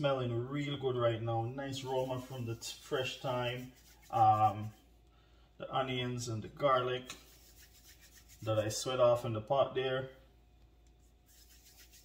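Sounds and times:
palms rubbing dough: 0:01.4 - 0:04.9, 0:07.1 - 0:08.9, 0:10.9 - 0:12.0.

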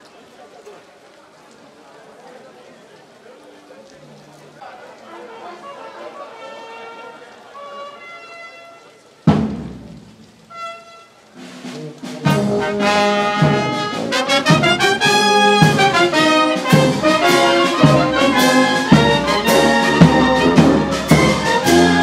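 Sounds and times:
murmur of voices: 0:00.0 - 0:09.8, 0:11.2 - 0:22.0
brass band playing: 0:05.3 - 0:08.6, 0:10.5 - 0:22.0.

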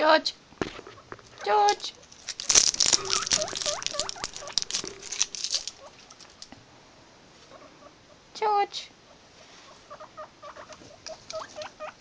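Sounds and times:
guinea pigs squeaking: 0:00.9 - 0:06.4, 0:07.4 - 0:07.9, 0:09.1 - 0:12.0.

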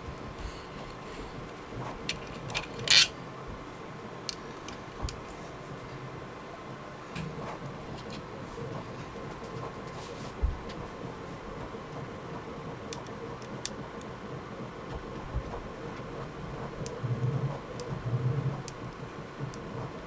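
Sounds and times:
steady hum: 0:00.0 - 0:20.0
soft low thumps: 0:10.4 - 0:10.8.

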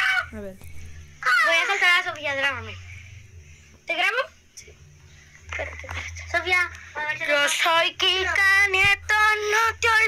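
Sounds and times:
child singing: 0:07.5 - 0:10.0.

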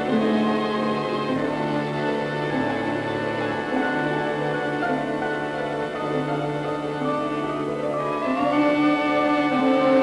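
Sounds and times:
bowed strings: 0:00.0 - 0:10.0
orchestral film music: 0:00.0 - 0:10.0.

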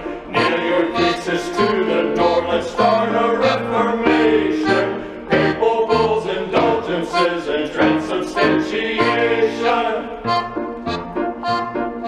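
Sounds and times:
men singing in harmony: 0:00.0 - 0:10.4
bouncing piano accompaniment: 0:00.0 - 0:12.0.

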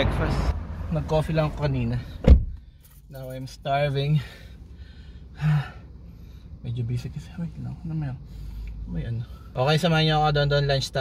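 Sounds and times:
man sighing: 0:04.3 - 0:05.9.

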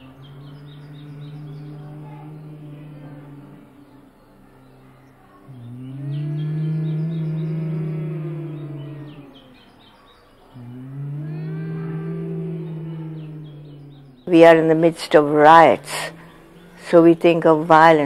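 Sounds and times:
low male chanting: 0:00.0 - 0:09.8, 0:10.4 - 0:18.0
breath: 0:15.8 - 0:16.9.

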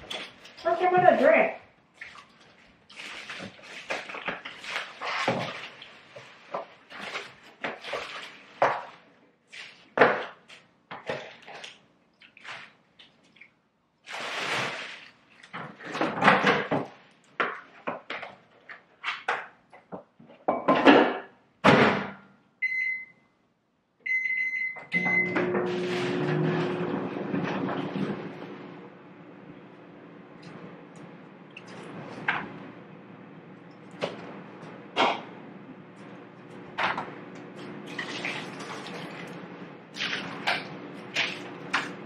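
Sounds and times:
plastic bag rustling: 0:02.4 - 0:08.8
keypad beeps: 0:22.6 - 0:23.2, 0:24.1 - 0:25.4
microwave oven humming: 0:24.1 - 0:42.0.

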